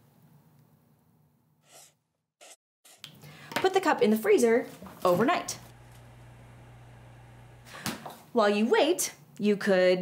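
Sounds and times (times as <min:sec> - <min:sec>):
freezer humming: 0:04.9 - 0:08.0.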